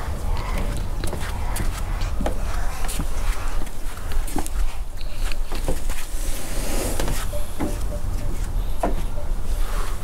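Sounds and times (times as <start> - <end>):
puppy paws tapping on wood: 0.3 - 6.1, 7.1 - 9.2.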